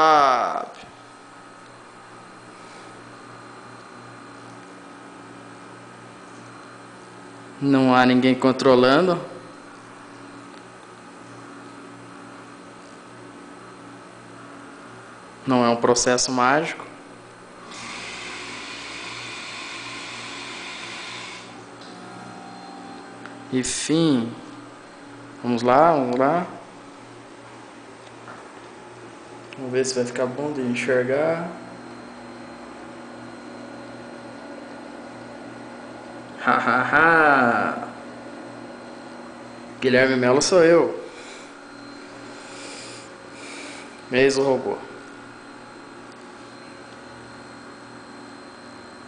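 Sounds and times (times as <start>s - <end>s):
faint electrical hum: 0.0s - 49.0s.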